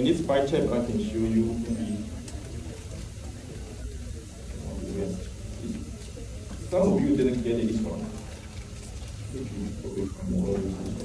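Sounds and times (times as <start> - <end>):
faint background voices: 0.0 - 11.0
steady low hum: 0.0 - 11.0.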